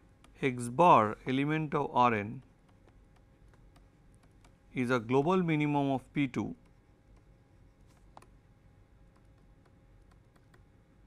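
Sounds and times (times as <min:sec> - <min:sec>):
man speaking: 0:00.4 - 0:02.4, 0:04.8 - 0:06.6
stylus tapping on pen tablet: 0:02.4 - 0:04.7, 0:06.6 - 0:10.7.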